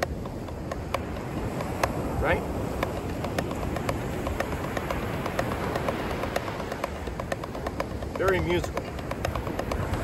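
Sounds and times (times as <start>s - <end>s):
drumsticks tapping a practice pad: 0.0s - 10.0s
wind and surf rumble: 0.0s - 10.0s.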